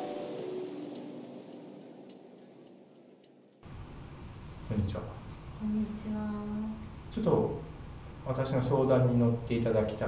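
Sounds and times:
room noise: 0:00.0 - 0:10.0.

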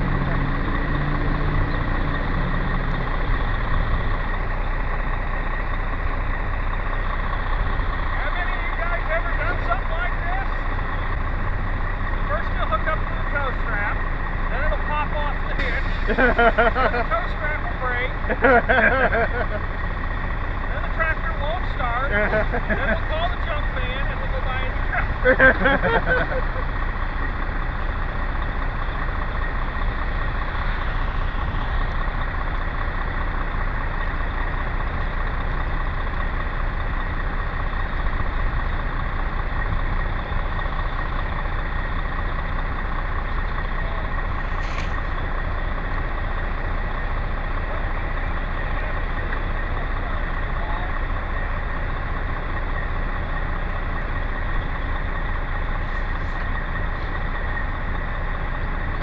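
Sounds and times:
tractor engine idling: 0:00.0 - 0:59.0.

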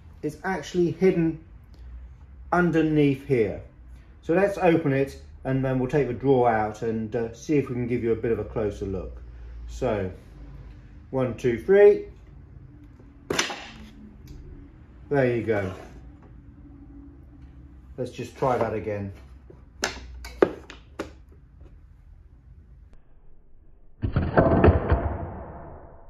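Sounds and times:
wooden board snapping open: 0:13.3 - 0:13.8.

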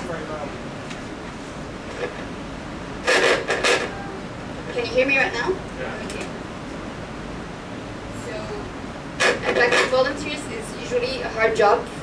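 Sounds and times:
lecture hall room hiss: 0:00.0 - 0:12.0.

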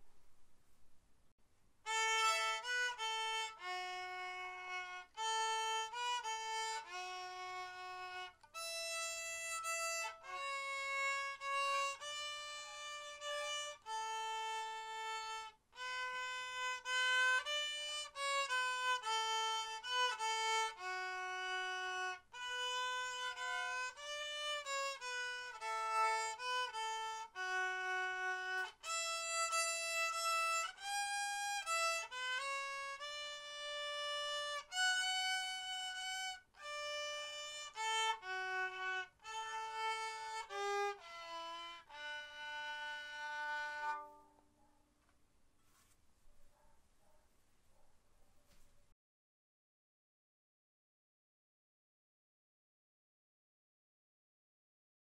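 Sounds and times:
solo violin melody: 0:01.8 - 0:44.4.

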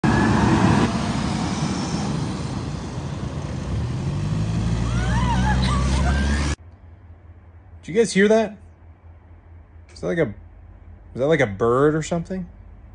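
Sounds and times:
forklift engine running: 0:00.0 - 0:07.8.

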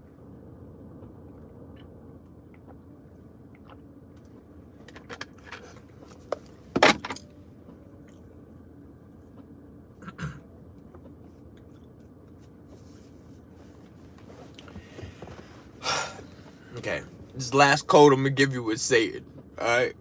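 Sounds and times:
faint low hum: 0:00.0 - 0:20.0.

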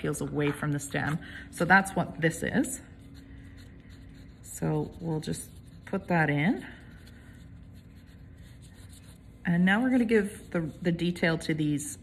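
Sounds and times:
drawing tip scratching on paper: 0:02.8 - 0:11.0.

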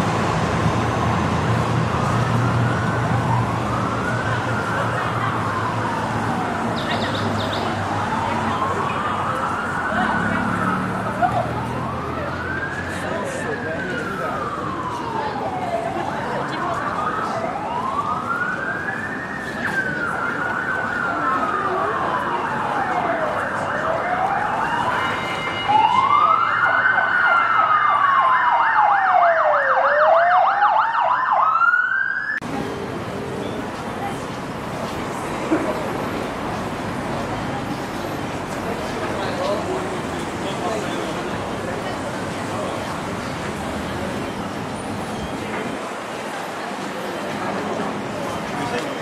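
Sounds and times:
emergency siren wailing: 0:00.8 - 0:33.0
fast yelping siren: 0:16.8 - 0:32.4.

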